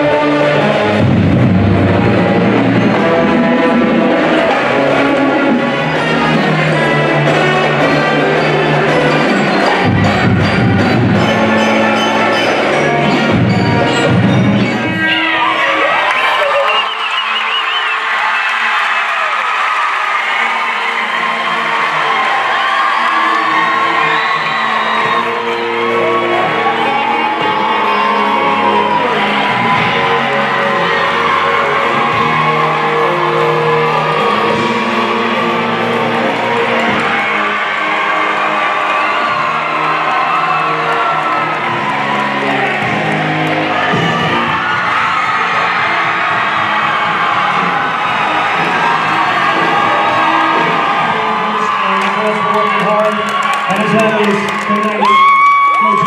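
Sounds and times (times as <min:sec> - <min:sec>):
music with held notes: 0:00.0 - 0:16.4, 0:19.5 - 0:55.0
crowd cheering and whooping: 0:00.0 - 0:56.0.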